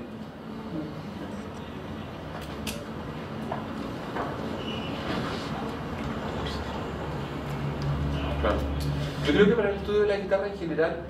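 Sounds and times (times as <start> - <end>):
low room rumble and hiss: 0.0 - 11.0.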